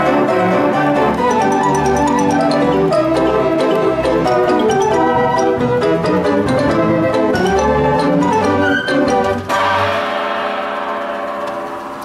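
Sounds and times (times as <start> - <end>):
player piano final chord: 0.0 - 12.0.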